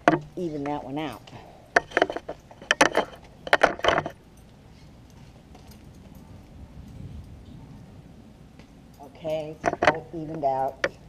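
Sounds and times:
metal rings and buckle jingling: 0.0s - 7.4s, 8.7s - 11.0s.

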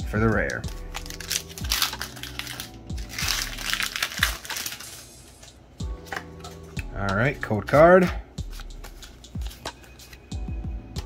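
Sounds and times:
quiet background music: 0.0s - 11.0s
foil wrapper crinkling: 0.7s - 6.5s.

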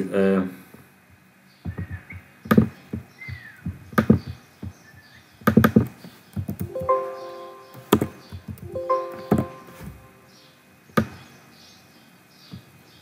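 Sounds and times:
keyboard keystrokes: 7.7s - 9.9s.

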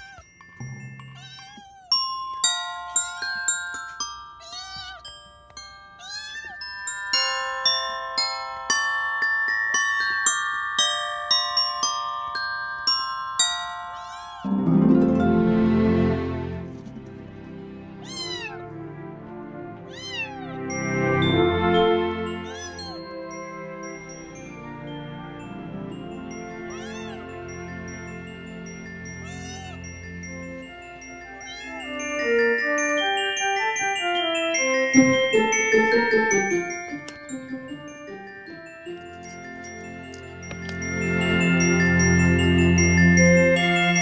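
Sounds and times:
kitten meowing: 0.0s - 0.3s, 1.1s - 2.0s, 4.4s - 5.1s, 6.0s - 6.6s, 14.0s - 14.5s, 18.0s - 18.6s, 19.9s - 20.6s, 22.4s - 23.1s, 26.7s - 27.2s, 29.2s - 29.8s, 31.4s - 31.9s.

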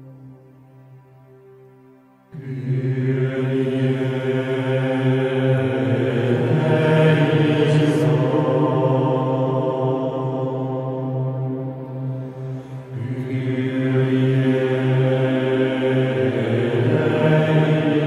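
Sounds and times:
low steady drone: 0.0s - 18.0s
held vocal chant tones: 2.3s - 18.0s.

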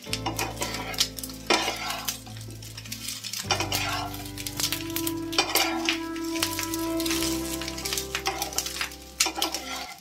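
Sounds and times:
light sizzle of frying: 0.0s - 10.0s
metal spatula scraping frying pan: 0.0s - 10.0s.

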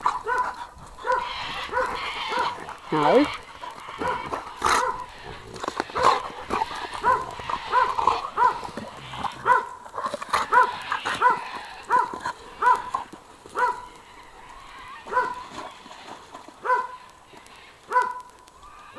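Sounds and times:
dog barking: 0.0s - 3.1s, 4.0s - 5.2s, 5.9s - 6.3s, 7.0s - 8.7s, 9.4s - 9.8s, 10.4s - 13.0s, 13.6s - 13.9s, 15.0s - 15.4s, 16.6s - 17.0s, 17.9s - 18.3s.

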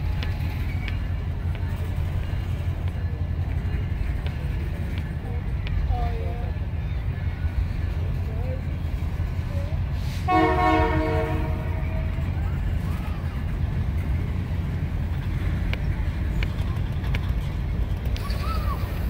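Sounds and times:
faint crowd voices: 0.0s - 19.0s
train cars rumbling past: 0.0s - 19.0s
train horn: 10.1s - 12.4s.

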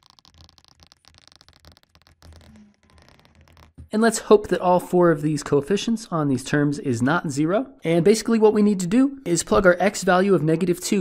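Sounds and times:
stylus scratching on tablet: 0.0s - 3.8s.

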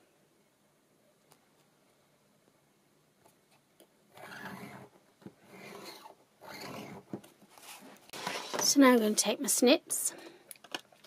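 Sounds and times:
stylus scraping along steel ruler: 4.1s - 8.5s.

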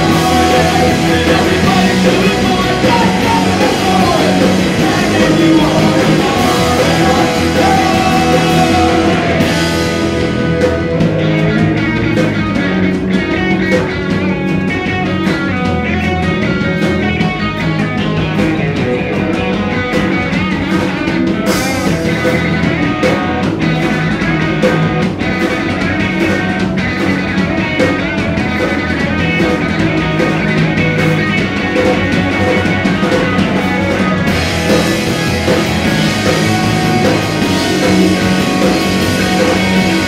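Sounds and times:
punk rock band playing: 0.0s - 40.0s.

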